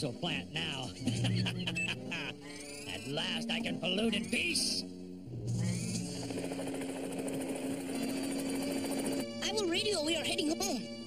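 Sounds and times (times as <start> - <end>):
cartoon aircraft engine drone: 0.8 - 11.0.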